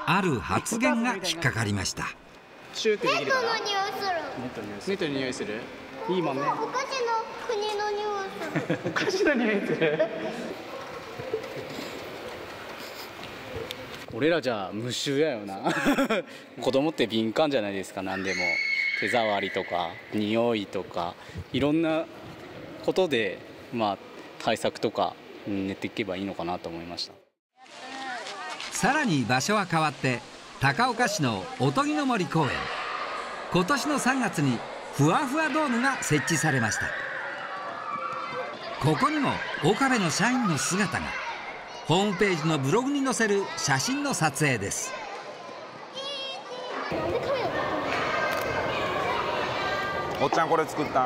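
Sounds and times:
children shouting and chattering: 0:02.4 - 0:14.0, 0:18.0 - 0:21.6, 0:27.6 - 0:51.0.

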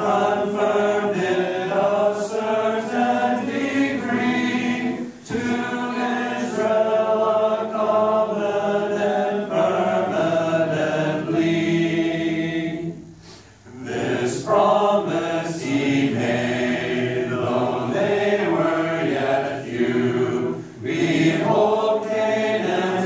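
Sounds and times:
congregation singing unaccompanied: 0:00.0 - 0:23.0.

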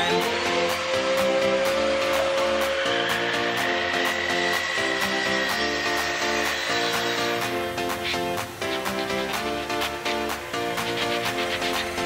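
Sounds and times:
mitre saw cutting wood: 0:00.0 - 0:12.0.

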